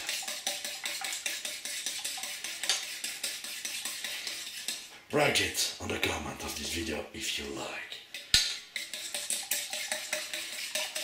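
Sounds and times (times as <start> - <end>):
utensil beating eggs in metal bowl: 0.0 - 4.9, 8.1 - 11.0.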